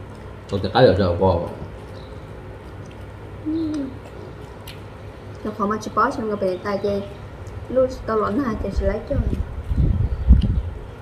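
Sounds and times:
low room hum: 0:00.0 - 0:11.0
person humming mm: 0:03.4 - 0:04.0.

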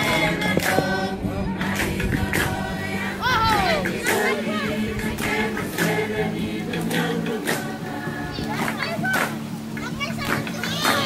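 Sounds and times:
background music with low tones: 0:00.0 - 0:11.0
children shouting: 0:03.1 - 0:04.9, 0:08.2 - 0:11.0.

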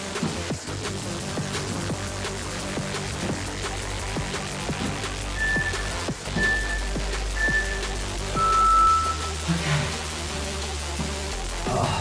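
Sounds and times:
electronic background music: 0:00.0 - 0:12.0
long low beep: 0:05.4 - 0:09.4
short high beeps: 0:05.4 - 0:09.4.

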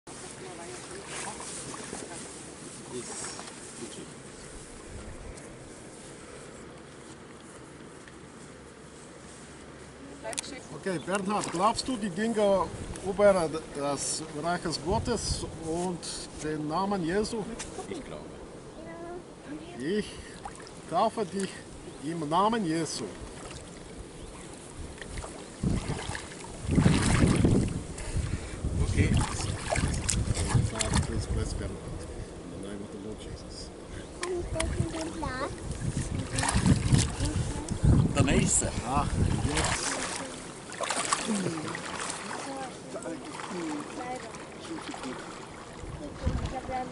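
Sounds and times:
lake water splashing and sloshing: 0:00.1 - 0:05.2, 0:10.3 - 0:18.2, 0:19.7 - 0:31.6, 0:34.1 - 0:46.9
wind hiss on microphone: 0:11.8 - 0:19.5, 0:21.6 - 0:40.7, 0:45.7 - 0:46.9.

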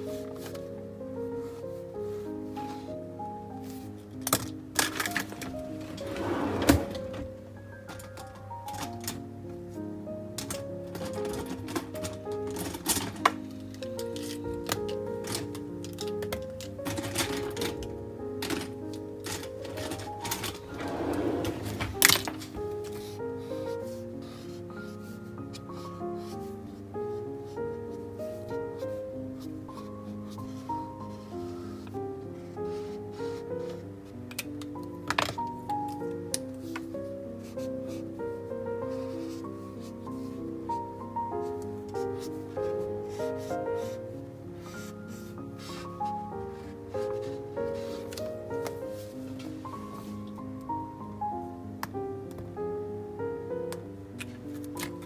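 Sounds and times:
soft instrumental background music: 0:00.0 - 0:55.0
pens clicking on paper notebook: 0:04.2 - 0:05.7, 0:10.4 - 0:26.8, 0:32.6 - 0:38.1, 0:38.8 - 0:40.8, 0:41.4 - 0:50.4, 0:53.8 - 0:55.0
marker scratching on paper: 0:38.8 - 0:40.3, 0:41.4 - 0:48.8.

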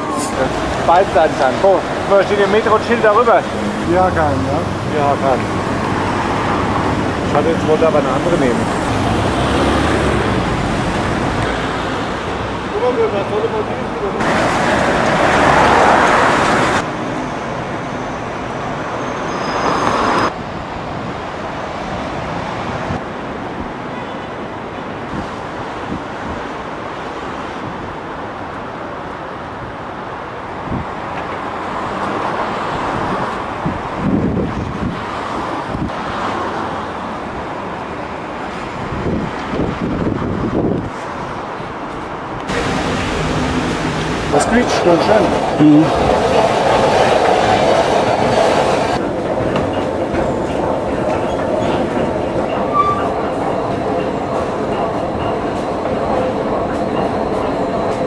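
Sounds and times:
cars passing: 0:00.0 - 0:58.0
city road traffic: 0:00.0 - 0:58.0.

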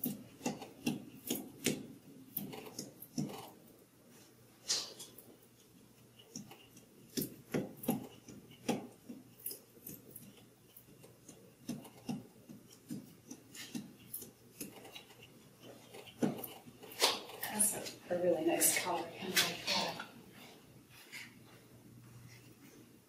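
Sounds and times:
tools clicking and tapping: 0:00.0 - 0:03.5, 0:04.7 - 0:18.0.

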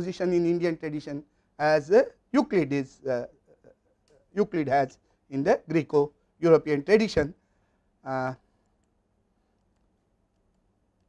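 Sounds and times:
man saying uh: 0:00.0 - 0:03.3, 0:04.4 - 0:07.3, 0:08.1 - 0:08.4
faint clicks: 0:08.6 - 0:11.0.

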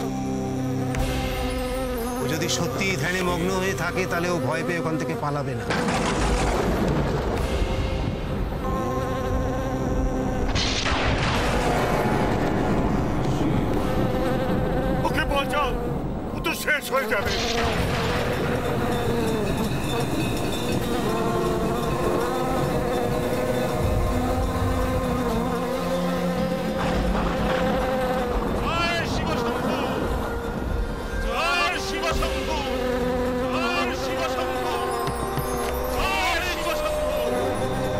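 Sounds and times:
bees buzzing: 0:08.4 - 0:37.9.

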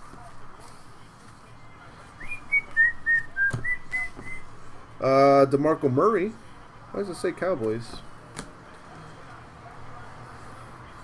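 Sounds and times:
person whistling a tune: 0:02.2 - 0:04.4.

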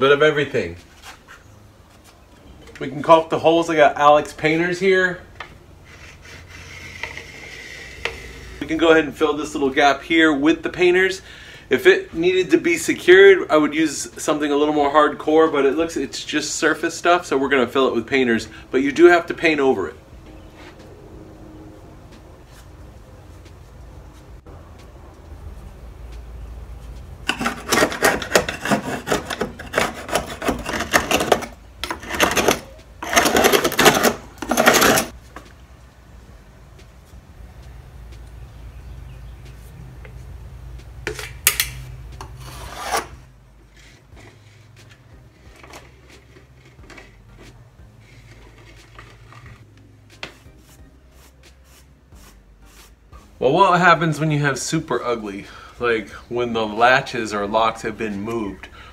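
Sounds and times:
scraping against wooden door jamb: 0:05.8 - 0:08.6, 0:27.3 - 0:35.2
handling sounds: 0:26.7 - 0:35.6.

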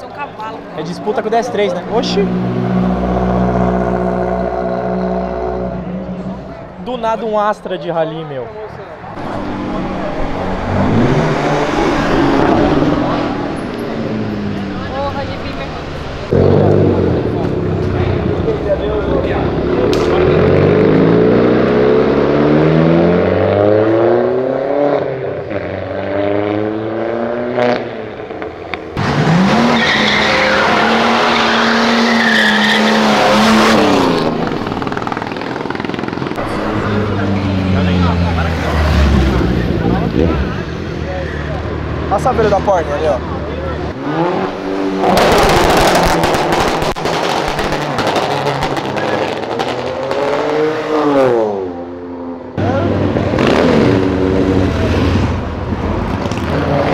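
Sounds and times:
car engines revving: 0:00.0 - 0:56.9
tyres squealing: 0:29.3 - 0:35.2.

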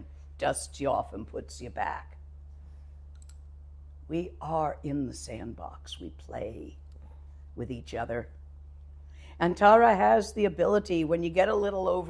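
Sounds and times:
steady low hum: 0:00.0 - 0:12.0
faint clicks: 0:03.1 - 0:03.4.

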